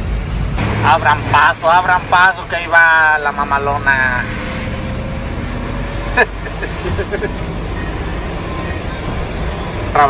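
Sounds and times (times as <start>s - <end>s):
truck engine and tyres rumbling: 0.0s - 10.0s.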